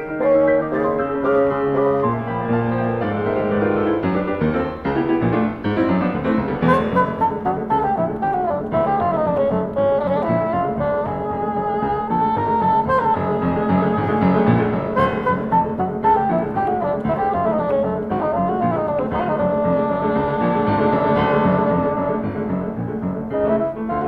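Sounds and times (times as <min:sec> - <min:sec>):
piano accompaniment: 0:00.0 - 0:24.0
bassoon melodic runs: 0:06.4 - 0:24.0.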